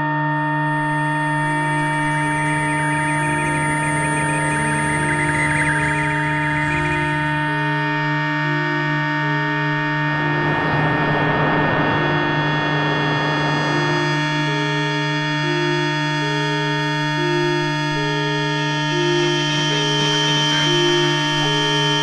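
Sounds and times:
electronic drone tones: 0.4 - 22.0
hissing radio noise: 1.8 - 9.1, 9.7 - 18.3.

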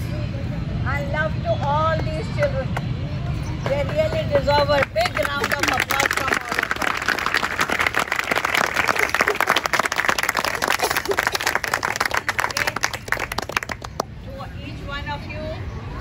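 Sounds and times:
voices: 0.0 - 16.0
audience applauding: 4.8 - 14.1.

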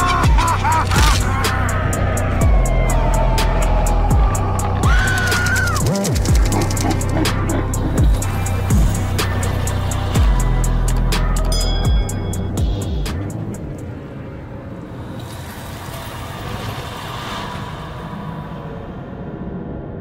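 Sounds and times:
hazy music bed: 0.0 - 15.6
fast clicking: 3.4 - 8.3.

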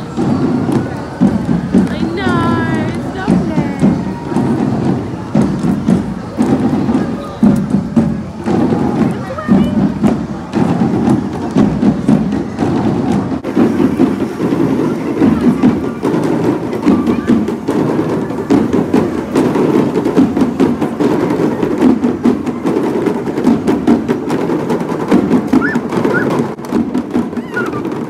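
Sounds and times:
marching drum band: 0.0 - 28.0.

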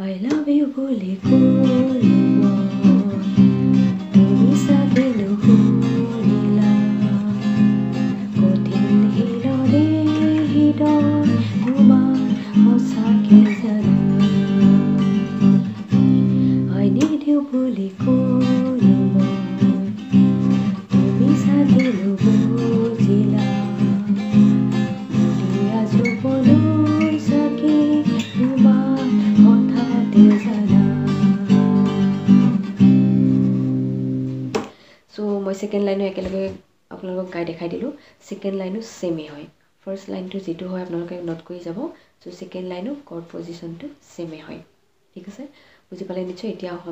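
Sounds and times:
woman singing: 0.0 - 32.6
acoustic guitar strumming: 1.2 - 17.3, 17.9 - 34.6.

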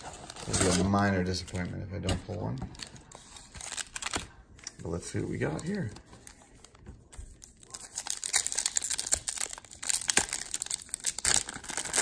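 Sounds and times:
card pack wrappers crinkling: 0.0 - 6.8, 7.4 - 12.0.

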